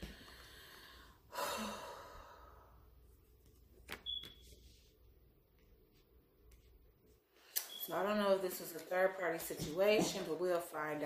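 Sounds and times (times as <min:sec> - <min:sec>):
long breathy sigh: 0:00.1 - 0:02.8.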